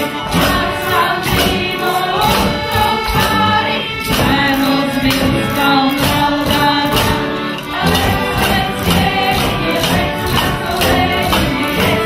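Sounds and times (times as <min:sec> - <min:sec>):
accordion: 0:00.0 - 0:12.0
group of voices singing: 0:00.0 - 0:12.0.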